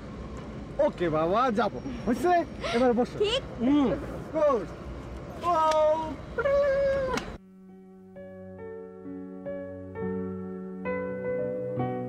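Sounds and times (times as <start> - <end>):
soft piano music: 7.4 - 12.0.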